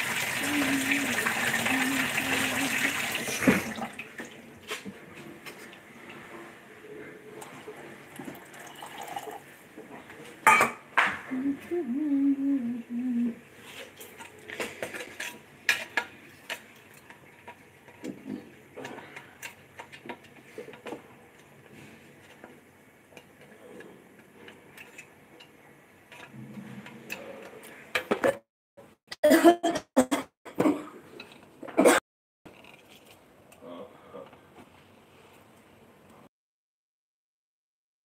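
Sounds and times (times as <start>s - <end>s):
person humming: 0.4s - 3.4s, 11.2s - 13.4s
person coughing: 29.2s - 31.0s, 31.8s - 32.0s.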